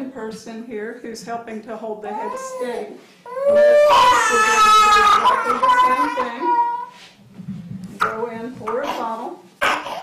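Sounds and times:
infant crying: 2.1 - 6.9, 8.9 - 10.0.

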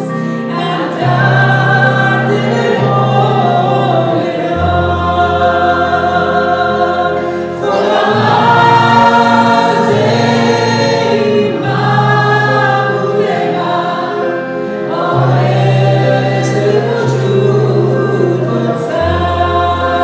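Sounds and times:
man and woman singing: 0.0 - 20.0
piano: 0.0 - 20.0.

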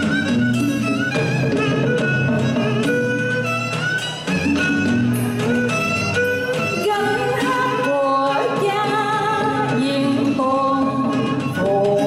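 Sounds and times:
string accompaniment: 0.0 - 12.0.

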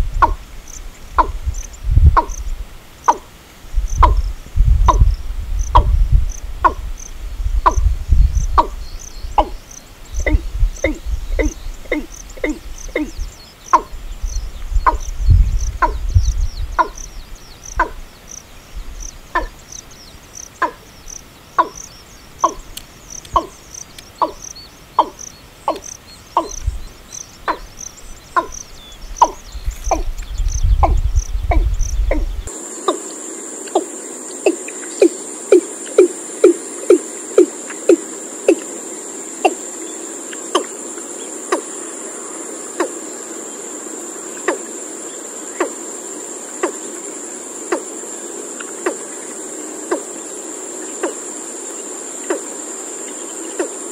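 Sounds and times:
high cricket trill: 0.0 - 53.9.

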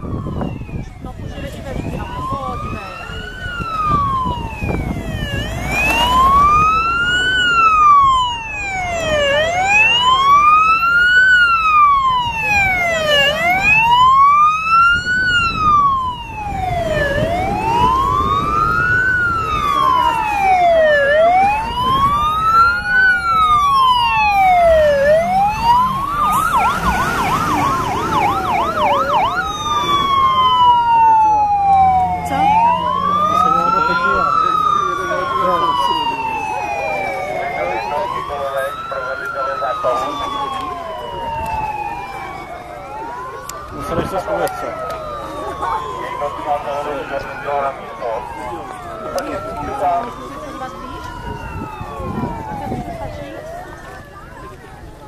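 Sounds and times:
siren fast yelp: 0.0 - 54.6
emergency siren wailing: 0.0 - 55.0
second siren sweeping: 0.0 - 55.0.

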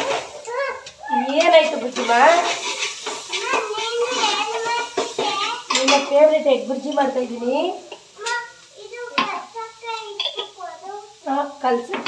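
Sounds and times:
people talking: 0.0 - 2.6, 3.3 - 12.0
spoon scraping metal pot: 1.3 - 7.2.

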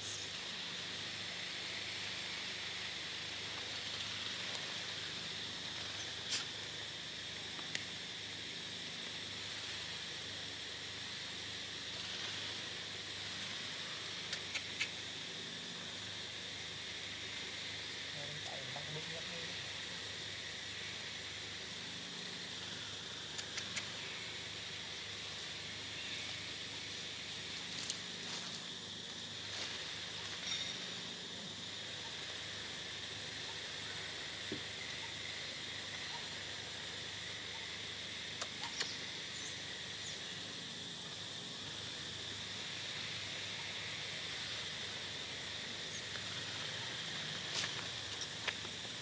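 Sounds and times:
insect chorus drone: 0.0 - 49.0
faint short clicks: 23.3 - 24.0.

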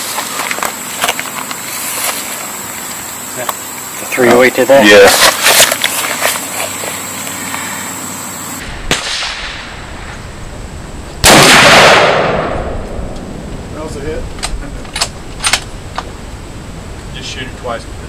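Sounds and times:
rifle shot with echo: 8.8 - 9.8, 11.2 - 13.1.

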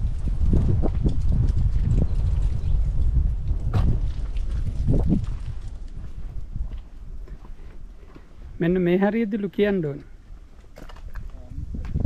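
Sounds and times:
wind buffeting microphone: 0.0 - 8.6, 10.2 - 12.0
footsteps on concrete: 3.4 - 8.4.

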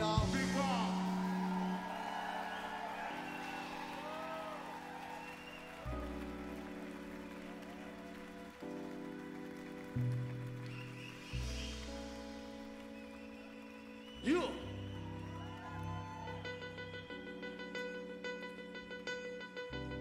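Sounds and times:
deep bass notes: 0.0 - 1.6
crowd cheering and whooping: 0.0 - 17.3
keyboard chords: 0.0 - 20.0.

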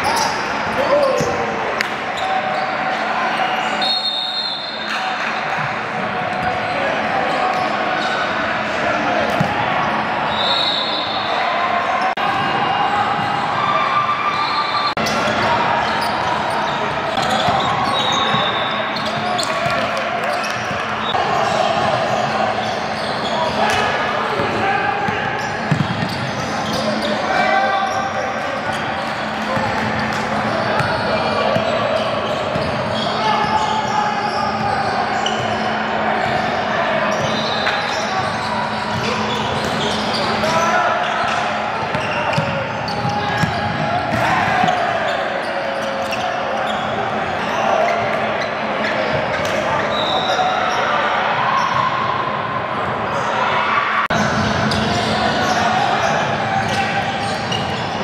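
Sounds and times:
indistinct echoing voices: 0.0 - 58.0
basketball bouncing on wooden court: 25.7 - 26.3, 41.9 - 44.8.

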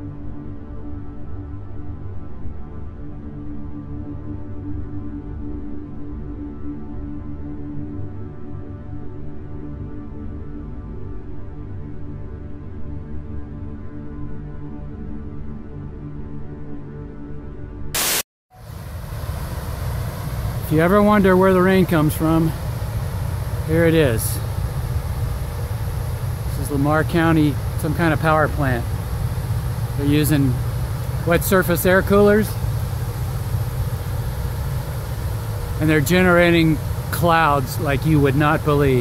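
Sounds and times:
tv static burst: 18.0 - 18.2
air coolers droning: 18.0 - 39.0
faint steady hum: 18.0 - 39.0
outdoor rumble with hiss: 18.0 - 39.0.

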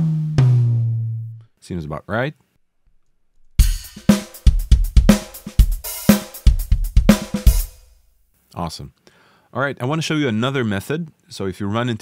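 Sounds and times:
funky drum groove: 3.6 - 7.9.

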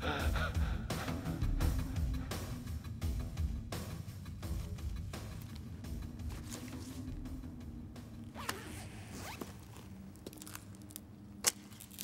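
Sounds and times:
cloth rustling and scraping: 4.5 - 7.3.

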